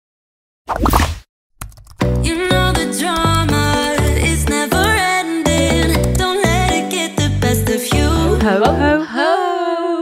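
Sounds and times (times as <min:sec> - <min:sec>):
keyboard typing clicks: 0:01.6 - 0:02.2.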